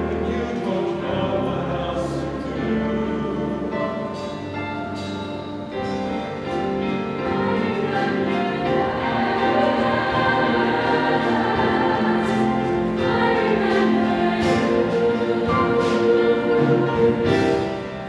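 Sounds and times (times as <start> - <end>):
choir singing sustained chords: 0.0 - 18.0
live band accompaniment: 0.0 - 18.0.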